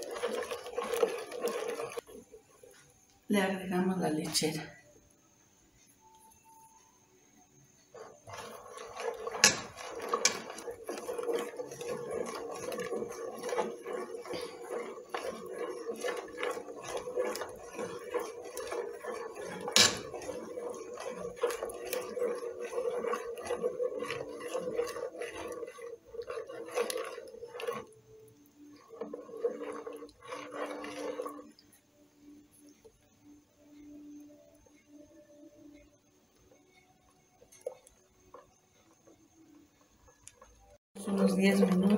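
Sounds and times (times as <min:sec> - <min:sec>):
metal spoon scraping a pot: 0:00.0 - 0:02.4, 0:07.9 - 0:31.7.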